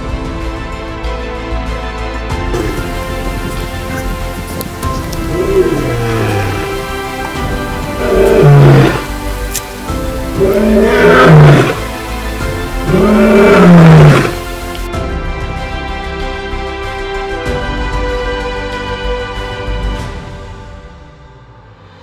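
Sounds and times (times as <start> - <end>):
background music: 0.0 - 22.0
lion roaring: 5.0 - 9.2, 10.2 - 11.9, 12.7 - 14.5.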